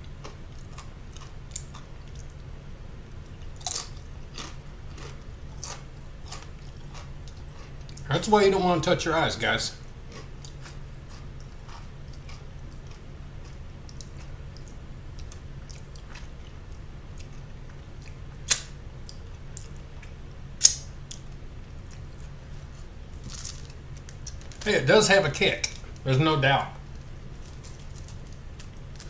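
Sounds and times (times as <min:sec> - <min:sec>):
low hum: 0:00.0 - 0:29.0
mouth clicks while chewing: 0:11.4 - 0:16.6.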